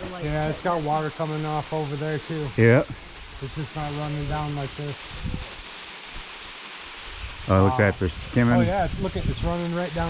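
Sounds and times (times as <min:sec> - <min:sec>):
waterfall spattering into pool: 0:00.0 - 0:10.0.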